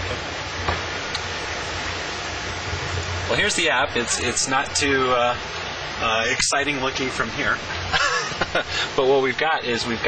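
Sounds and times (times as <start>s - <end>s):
low hum: 0.0s - 10.0s
rushing noise: 0.0s - 10.0s.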